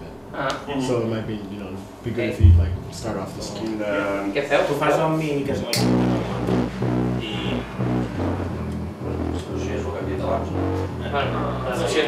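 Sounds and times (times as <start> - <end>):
low instrumental notes: 2.4 - 3.4, 5.8 - 12.0.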